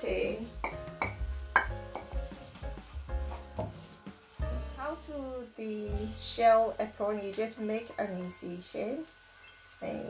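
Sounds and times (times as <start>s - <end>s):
background music: 0.0s - 10.0s
onions sizzling in hot oil: 0.0s - 10.0s
wooden spatula scraping pan: 2.0s - 4.2s.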